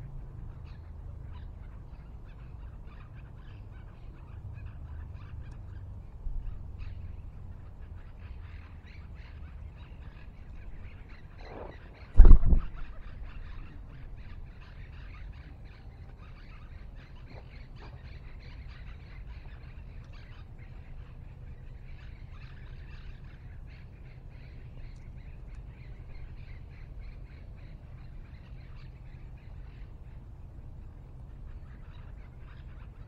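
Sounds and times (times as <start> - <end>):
low background rumble: 0.0 - 33.0
small birds chirping: 0.0 - 33.0
loud low thump: 12.2 - 13.6.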